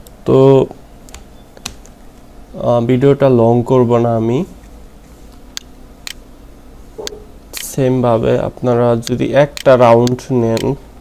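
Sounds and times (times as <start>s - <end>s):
computer keyboard keystrokes: 1.1s - 1.9s
person speaking: 2.5s - 5.6s, 6.9s - 11.0s.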